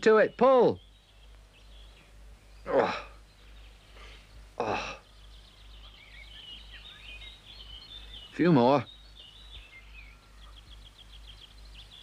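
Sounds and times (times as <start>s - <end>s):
bird twittering: 0.1s - 12.0s.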